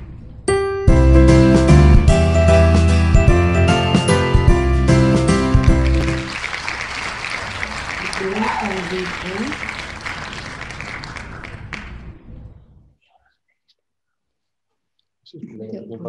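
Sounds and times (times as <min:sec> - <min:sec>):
crowd cheering and applause: 0:02.0 - 0:12.1
whoops: 0:08.0 - 0:09.7.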